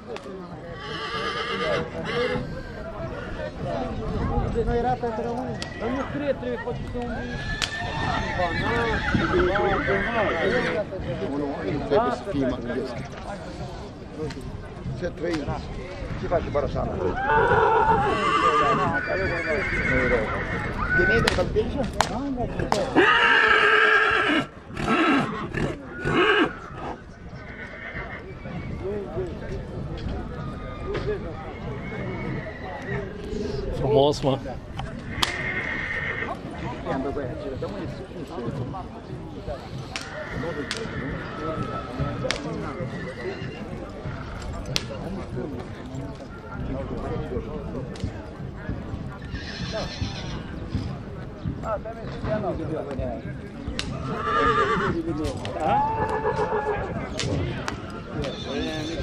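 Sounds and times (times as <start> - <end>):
horse whinnying: 0.7 - 2.9, 7.1 - 10.8, 17.1 - 21.3, 22.9 - 28.8, 30.3 - 33.4, 35.0 - 36.4, 40.0 - 44.5, 49.2 - 50.6, 53.9 - 59.0.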